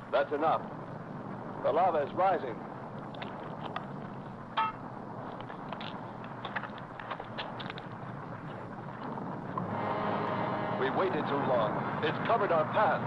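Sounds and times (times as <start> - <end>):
lava hissing rumble: 0.0 - 10.0
small crackles: 0.6 - 9.7.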